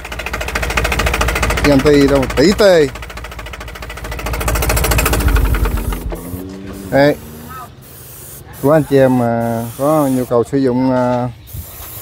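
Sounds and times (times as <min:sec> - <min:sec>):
diesel engine running: 0:00.0 - 0:09.0.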